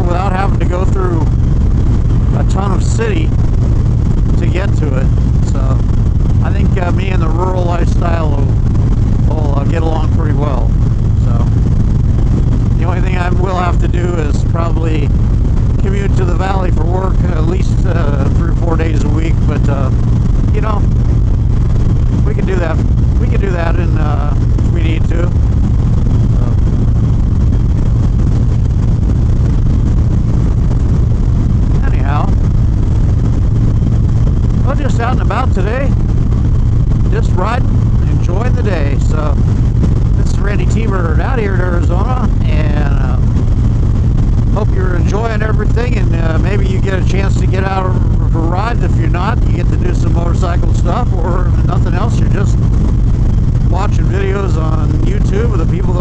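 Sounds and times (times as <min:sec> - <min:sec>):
man talking: 0:00.0 - 0:01.4, 0:02.3 - 0:03.4, 0:04.3 - 0:08.6, 0:09.2 - 0:11.6, 0:12.7 - 0:15.2, 0:15.8 - 0:20.9, 0:22.2 - 0:25.4, 0:26.3 - 0:26.8, 0:31.7 - 0:32.4, 0:34.6 - 0:36.0, 0:37.0 - 0:39.5, 0:40.1 - 0:43.4, 0:44.5 - 0:52.6, 0:53.6 - 0:56.0
motorcycle engine cruising: 0:00.0 - 0:56.0
wind rush: 0:00.0 - 0:56.0.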